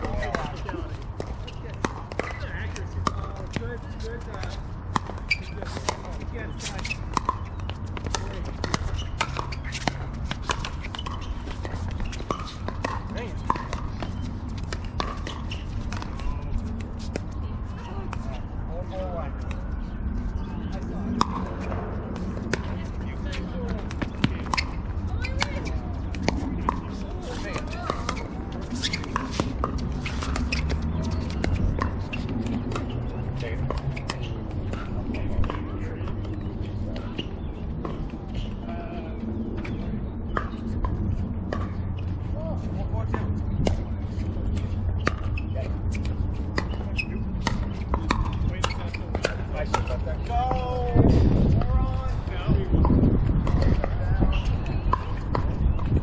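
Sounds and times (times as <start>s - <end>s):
distant voices: 0.0s - 56.0s.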